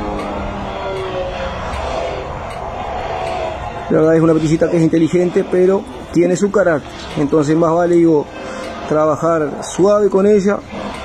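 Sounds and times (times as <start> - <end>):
steady low rumble: 0.0 - 11.0
faint regular tick: 0.1 - 0.4, 1.7 - 3.5.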